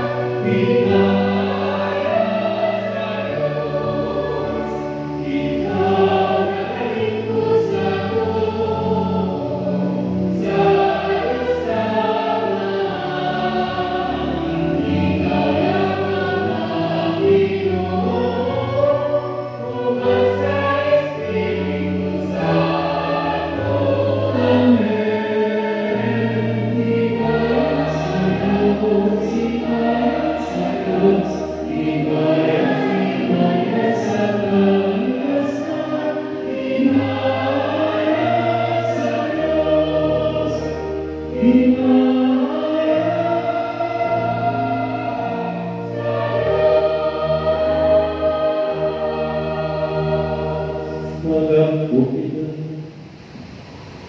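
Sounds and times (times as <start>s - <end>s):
choir singing a hymn: 0.0s - 54.0s
sustained low accompaniment notes: 0.0s - 54.0s.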